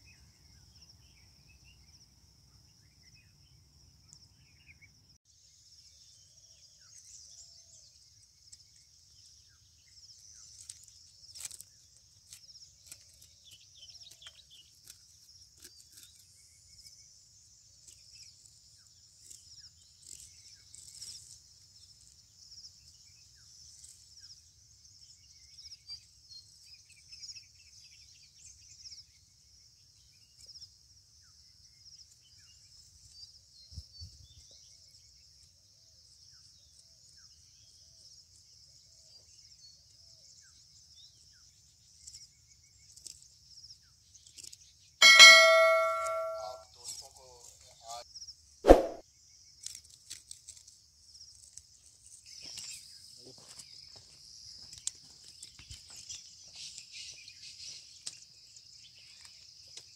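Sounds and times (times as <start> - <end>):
bright bell-like chime: 45.0 - 46.6.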